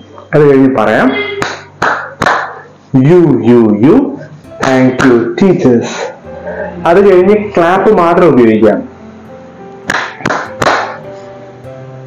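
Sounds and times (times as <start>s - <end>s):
background music: 0.0s - 12.0s
hand claps: 1.4s - 2.6s, 4.6s - 5.2s, 9.9s - 11.0s.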